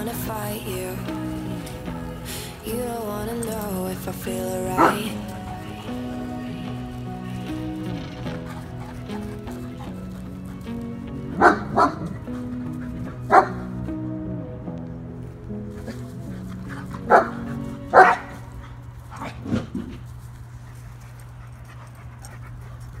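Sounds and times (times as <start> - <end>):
music with held notes and bass: 0.0 - 18.6
dog barking: 4.7 - 5.5, 11.4 - 12.2, 13.3 - 13.7, 17.1 - 18.4.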